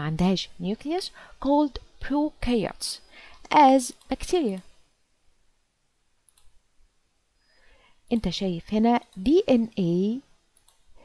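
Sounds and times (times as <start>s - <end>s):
computer mouse clicking: 6.2s - 6.6s, 10.6s - 10.9s.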